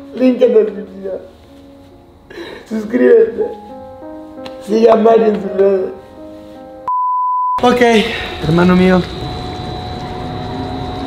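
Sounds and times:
background music of held notes: 0.0s - 6.9s
high-pitched censor bleep: 6.9s - 7.6s.

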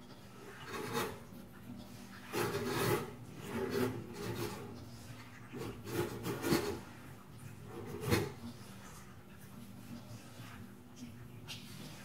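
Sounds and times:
rubbing and scraping: 0.3s - 10.7s.

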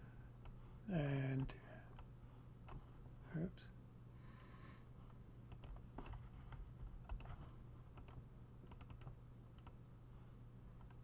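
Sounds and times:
low steady hum: 0.0s - 11.0s
computer keys and mouse clicking: 5.5s - 6.2s, 7.0s - 9.8s.

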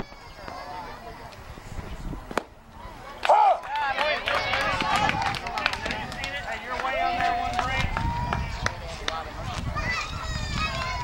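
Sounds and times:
voices calling out and chattering: 0.0s - 11.0s.

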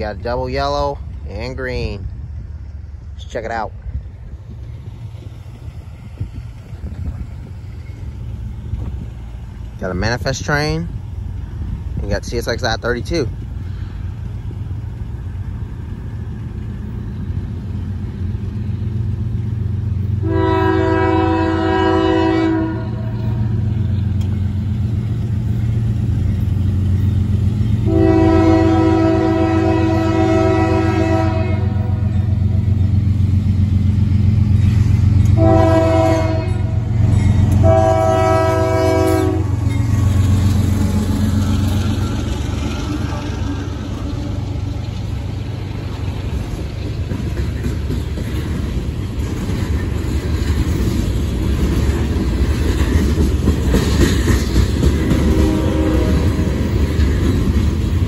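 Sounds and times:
freight cars rolling past: 0.0s - 58.0s
locomotive engine rumble: 0.0s - 58.0s
train horn blasts: 20.2s - 23.6s, 27.8s - 32.3s, 35.3s - 39.7s, 55.1s - 56.6s.

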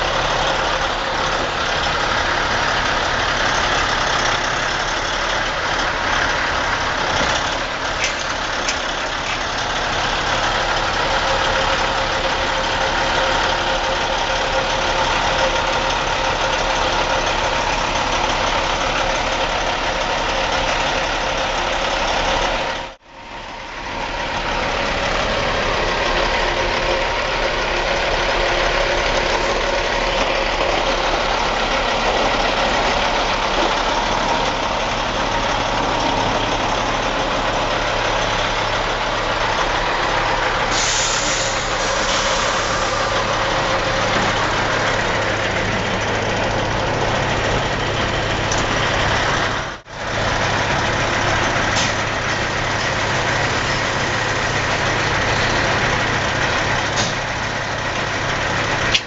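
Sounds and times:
diesel engine idling: 0.0s - 59.0s.

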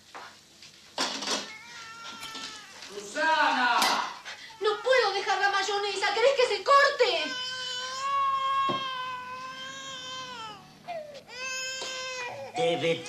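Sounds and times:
baby crying: 1.4s - 2.9s, 4.4s - 5.6s, 7.0s - 13.0s.

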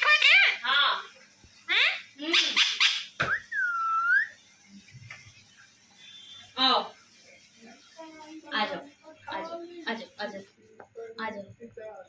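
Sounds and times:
parakeet chattering calls: 0.0s - 1.1s, 1.7s - 4.4s
parakeet whistle: 2.3s - 4.4s.

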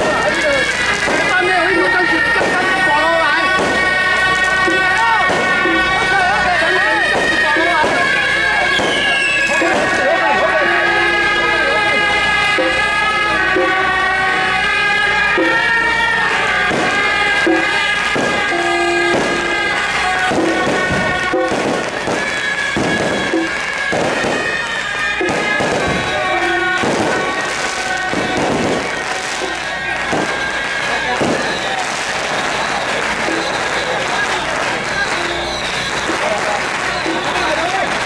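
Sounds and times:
brass band playing: 0.0s - 38.0s
crowd: 0.0s - 38.0s
firecrackers popping: 0.0s - 38.0s.

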